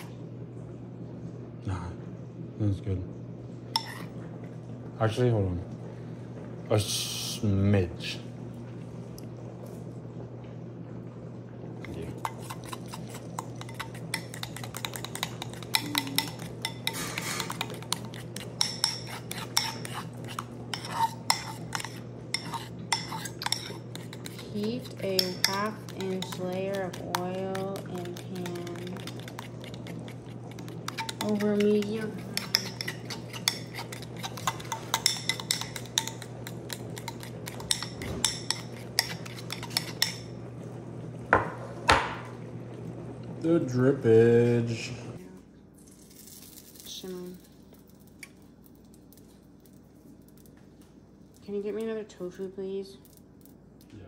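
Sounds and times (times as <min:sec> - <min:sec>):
fork clinking against bowl: 0:12.2 - 0:40.3.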